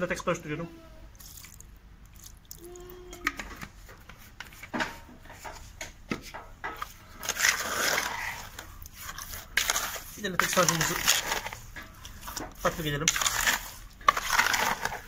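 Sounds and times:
liquid pouring into bucket: 1.2 - 2.7
trowel scraping mortar in bucket: 7.2 - 15.0.

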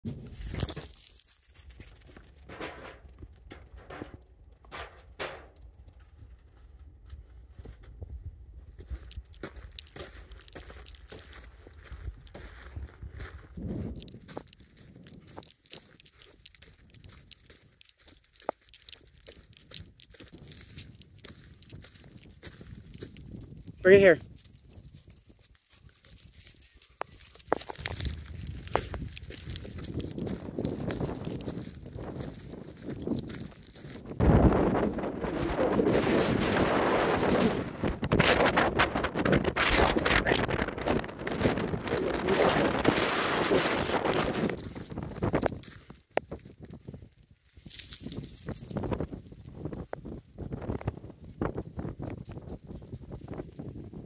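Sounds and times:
wind rumbling on microphone: 1.6 - 17.8, 18.9 - 54.0
person speaking: 23.8 - 24.2, 39.6 - 40.6.

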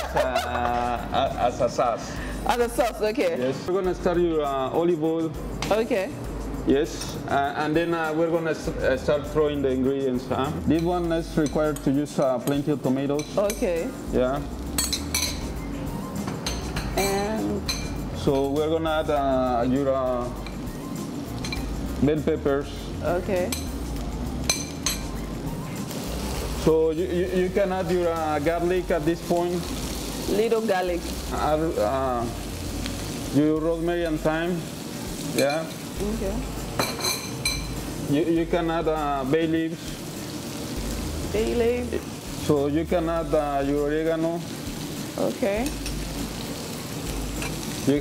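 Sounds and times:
vegetables sizzling in a frying pan: 0.0 - 48.0
spoon clinking on ceramic bowl: 14.8 - 15.5, 24.5 - 25.2, 36.8 - 37.8.

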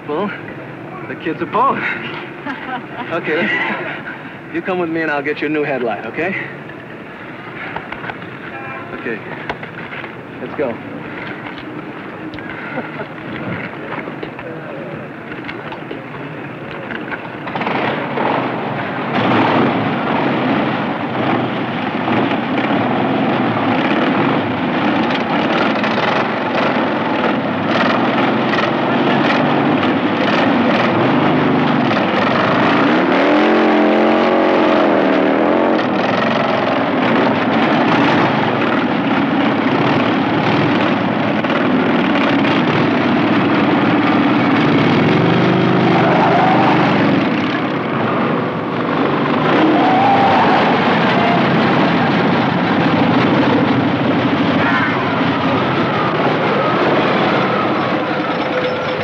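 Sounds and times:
motorcycle engines revving: 0.0 - 59.0.

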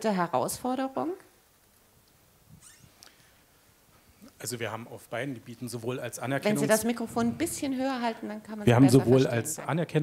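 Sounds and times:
person asking a question: 6.4 - 9.7.

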